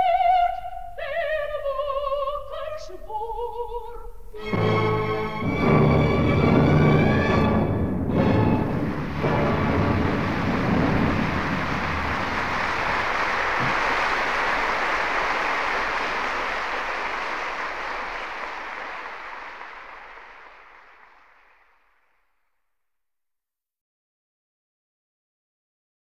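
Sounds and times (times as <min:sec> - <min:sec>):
audience applauding: 0:05.5 - 0:22.4.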